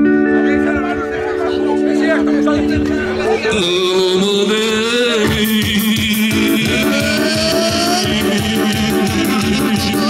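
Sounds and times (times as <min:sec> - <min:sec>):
dance music over loudspeaker: 0:05.2 - 0:10.0.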